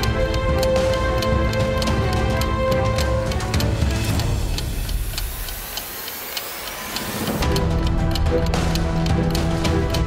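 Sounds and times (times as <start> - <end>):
clock ticking: 0.0 - 10.0.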